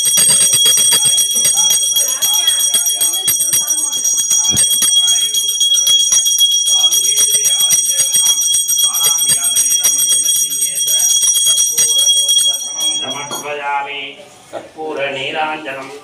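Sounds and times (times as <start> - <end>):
hand bell ringing rapidly: 0.0 - 13.5
people's voices: 0.0 - 16.0.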